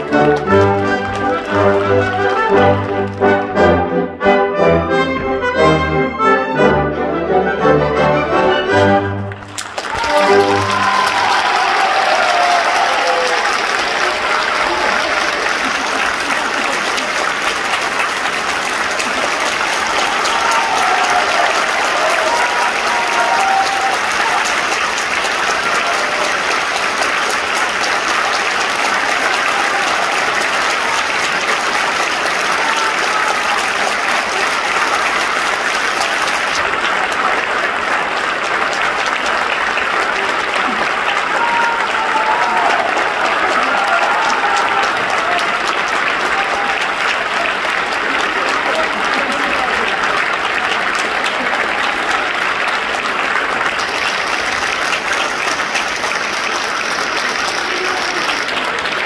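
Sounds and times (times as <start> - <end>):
audience applauding: 0.0 - 4.2, 8.5 - 59.0.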